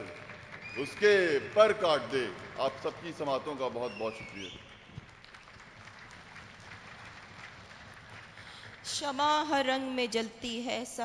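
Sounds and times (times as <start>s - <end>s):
faint audience applause: 0.0s - 9.0s.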